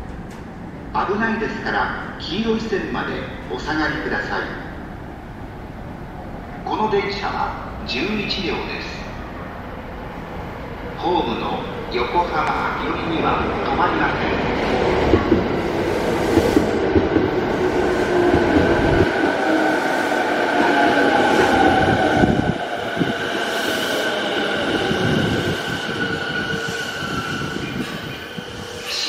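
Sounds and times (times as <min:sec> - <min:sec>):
train wheels rumbling on rails: 0:11.2 - 0:29.0.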